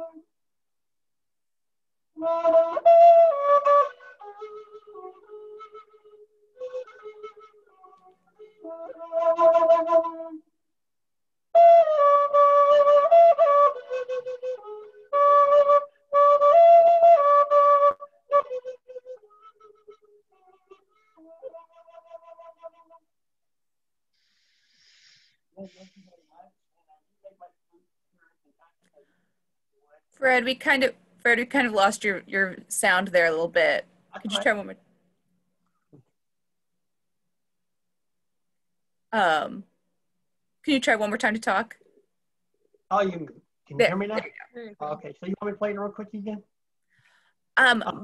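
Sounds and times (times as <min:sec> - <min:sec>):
wooden flute playing held notes: 0:02.2 - 0:10.5, 0:11.5 - 0:23.0.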